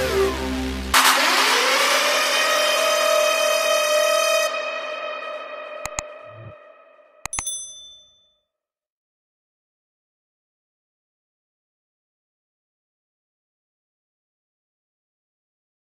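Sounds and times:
mouse clicks: 0:05.9 - 0:06.5, 0:07.3 - 0:07.6
bright bell ding: 0:07.3 - 0:08.2
ringing metallic hit: 0:07.3 - 0:08.2.

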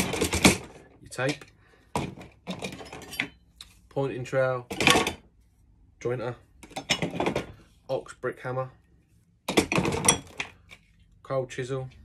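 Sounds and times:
metal tools knocking and clinking: 0:02.5 - 0:03.4, 0:09.5 - 0:10.5.

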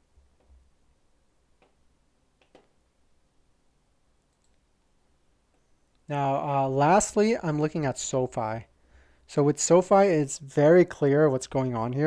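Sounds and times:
faint computer clicks: 0:04.3 - 0:04.7.

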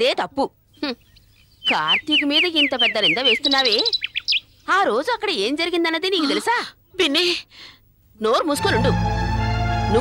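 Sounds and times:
birds chirping: 0:00.0 - 0:06.8.

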